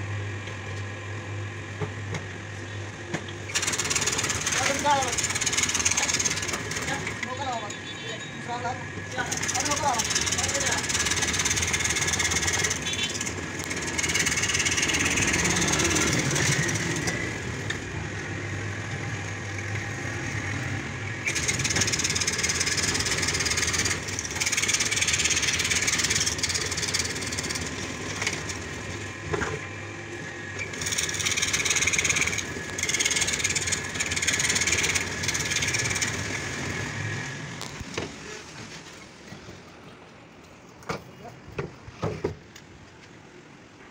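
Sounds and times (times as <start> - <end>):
scroll saw cutting board: 3.5 - 7.4, 9.1 - 38.9.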